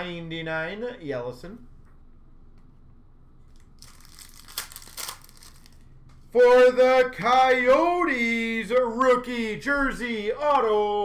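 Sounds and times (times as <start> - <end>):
thin plastic crinkling: 3.5 - 6.0.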